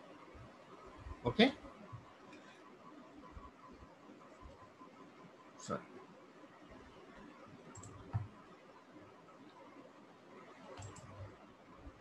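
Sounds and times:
faint steady hiss: 0:00.0 - 0:12.0
computer mouse click: 0:07.7 - 0:08.4, 0:10.7 - 0:11.3.

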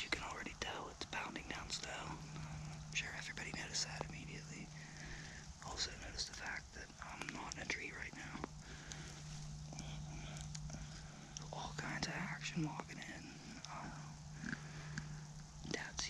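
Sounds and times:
low steady hum: 0:00.0 - 0:16.0
man whispering: 0:00.0 - 0:16.0.

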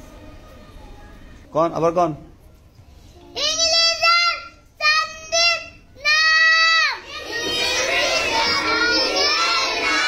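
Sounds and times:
children's voices: 0:03.0 - 0:10.0
boy reciting in sing-song voice: 0:03.3 - 0:10.0.

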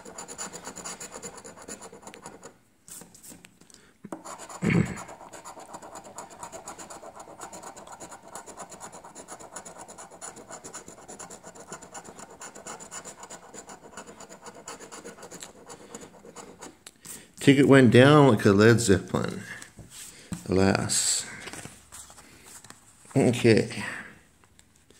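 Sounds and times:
coin scratching a ticket: 0:00.0 - 0:03.1, 0:04.2 - 0:16.8.

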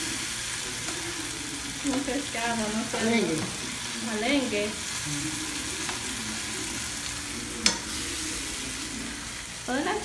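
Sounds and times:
food sizzling in a frying pan: 0:00.0 - 0:10.0
fork clinking against pan: 0:07.6 - 0:07.9.

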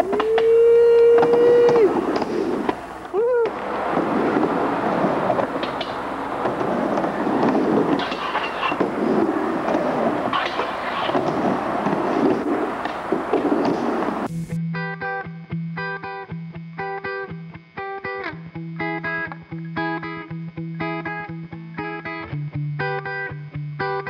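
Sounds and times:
person shouting: 0:00.0 - 0:02.0, 0:03.1 - 0:03.6
skateboard clacks and knocks: 0:00.0 - 0:02.8, 0:03.4 - 0:14.3
skateboard rolling on metal: 0:00.0 - 0:14.3.

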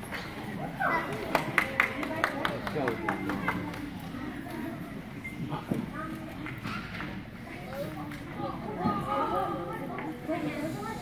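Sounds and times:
children and adults talking: 0:00.0 - 0:11.0.

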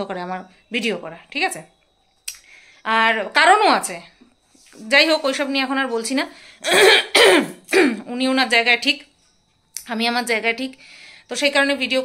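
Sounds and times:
woman talking: 0:00.0 - 0:01.8, 0:02.8 - 0:06.8, 0:07.7 - 0:09.1, 0:09.8 - 0:12.0
woman clearing her throat: 0:06.6 - 0:08.1.

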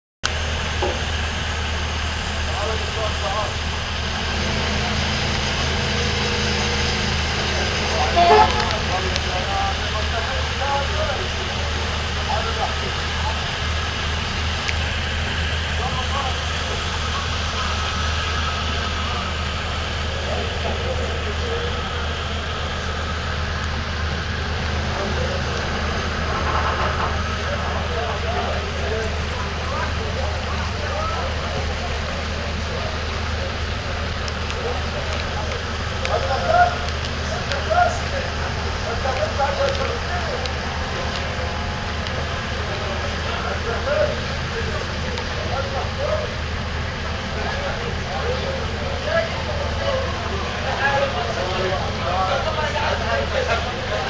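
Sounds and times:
ship diesel engines droning: 0:00.2 - 0:54.0
crew voices calling: 0:04.2 - 0:09.8.

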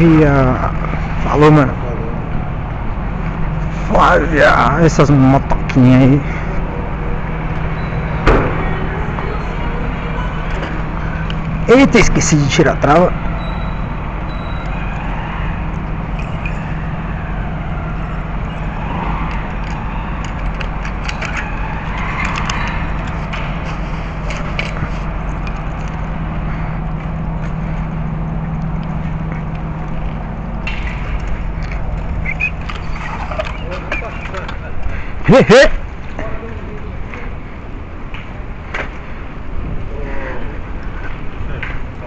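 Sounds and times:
steady low hum: 0:00.0 - 0:42.0
bicycle clicks and rattles: 0:19.2 - 0:26.2.

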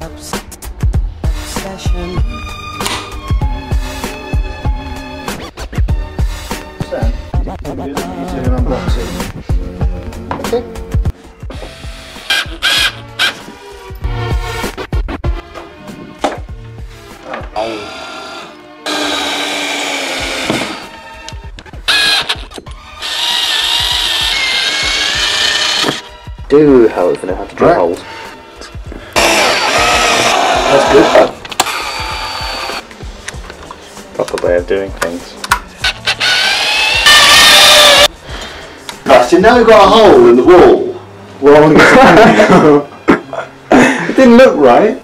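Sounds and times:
cordless drill driving screw: 0:12.2 - 0:13.4, 0:17.6 - 0:20.8, 0:21.9 - 0:26.1, 0:29.2 - 0:32.8, 0:35.8 - 0:38.1.

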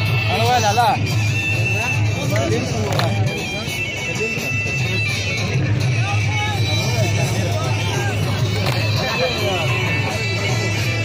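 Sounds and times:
crowd of men talking: 0:00.0 - 0:11.0
dhol drum: 0:00.0 - 0:11.0.

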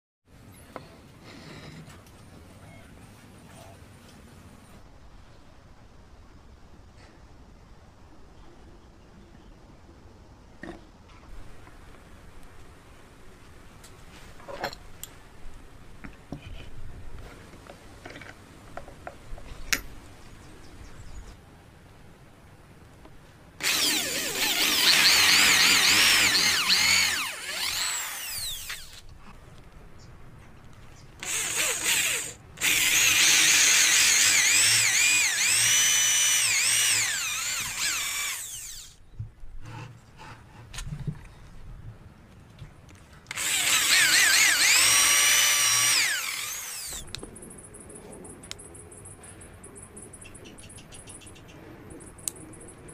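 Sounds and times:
electric drill whining: 0:23.6 - 0:29.0, 0:31.2 - 0:39.0, 0:43.3 - 0:47.0.

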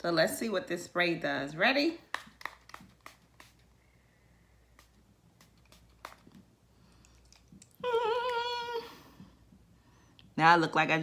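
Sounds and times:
spray bottle spritzes: 0:02.2 - 0:03.8, 0:04.7 - 0:06.5.

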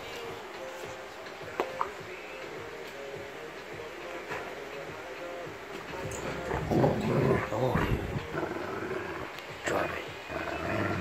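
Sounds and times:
dog growling in play: 0:06.2 - 0:11.0.

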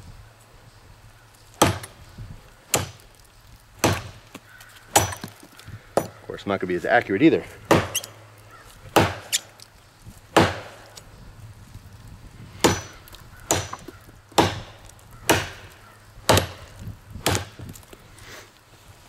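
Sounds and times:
machete chopping into wood: 0:01.6 - 0:02.0, 0:02.7 - 0:03.1, 0:03.8 - 0:06.2, 0:07.7 - 0:08.2, 0:08.9 - 0:09.6, 0:10.3 - 0:11.0, 0:12.6 - 0:17.8.

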